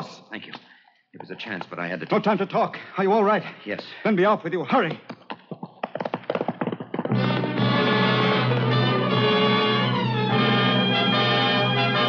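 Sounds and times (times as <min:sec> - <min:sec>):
horse hoofbeats galloping: 0:04.7 - 0:12.0
orchestral music with brass: 0:07.2 - 0:12.0.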